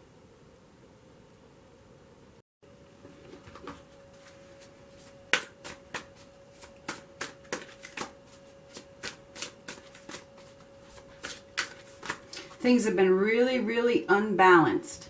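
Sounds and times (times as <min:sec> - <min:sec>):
cards being shuffled: 0:03.4 - 0:12.6.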